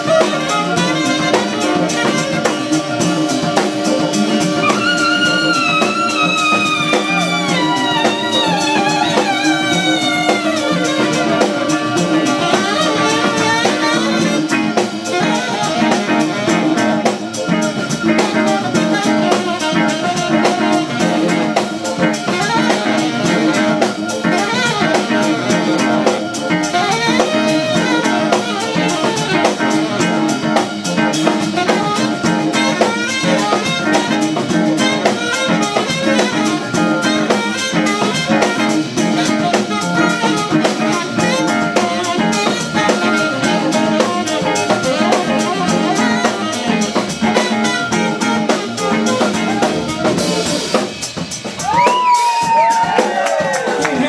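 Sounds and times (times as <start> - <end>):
bass: 0.0 - 54.0
drum kit steady beat: 0.0 - 54.0
electric guitar: 0.0 - 54.0
tenor saxophone: 0.0 - 54.0
trumpet: 0.0 - 54.0.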